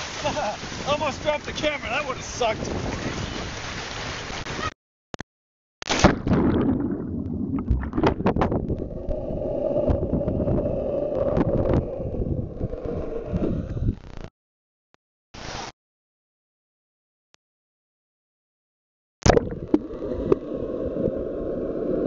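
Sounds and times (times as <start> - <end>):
water rushing down a slide: 0.0 - 4.7
clicks underwater: 5.8 - 9.2, 19.2 - 20.4
splash into pool: 5.9 - 8.2
bubbling underwater sound: 6.0 - 14.0, 19.2 - 22.0.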